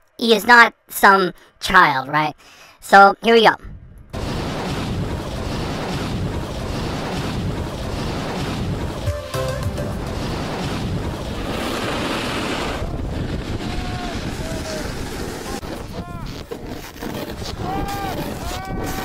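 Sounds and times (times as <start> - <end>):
wind buffeting microphone: 3.6 - 9.1, 10.0 - 19.0
snowboard sliding on snow: 4.2 - 19.0.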